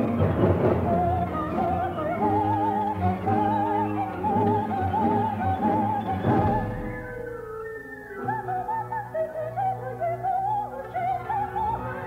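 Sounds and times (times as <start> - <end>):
soprano singing ornamented notes: 0.0 - 12.0.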